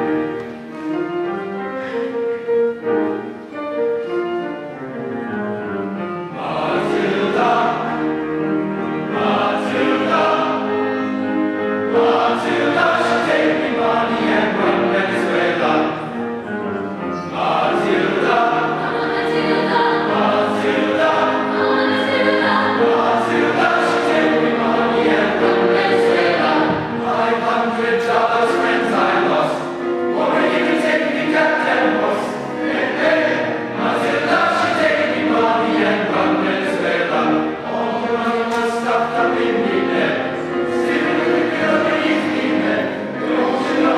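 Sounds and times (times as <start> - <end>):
mixed choir singing: 6.3 - 43.9.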